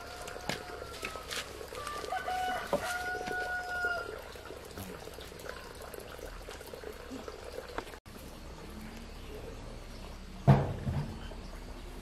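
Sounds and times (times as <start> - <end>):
rooster crowing: 0.0 - 4.2.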